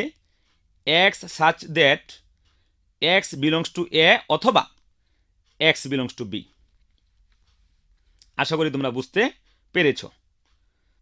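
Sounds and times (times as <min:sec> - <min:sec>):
faint clicks: 0:00.1 - 0:00.8, 0:10.4 - 0:11.0
person speaking: 0:00.9 - 0:02.2, 0:03.0 - 0:04.7, 0:05.6 - 0:06.5, 0:08.2 - 0:10.1.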